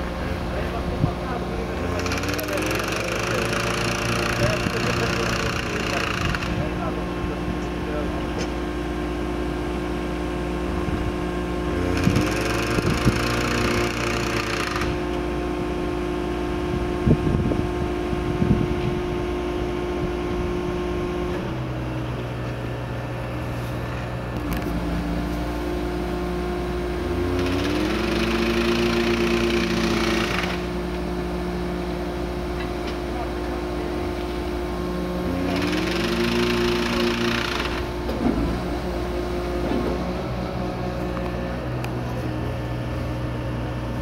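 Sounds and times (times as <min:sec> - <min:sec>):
track machine engine running: 0:00.0 - 0:16.6, 0:20.4 - 0:44.0.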